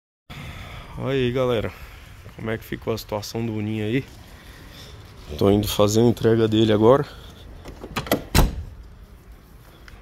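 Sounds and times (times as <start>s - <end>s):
car door shutting thump: 7.8s - 8.7s.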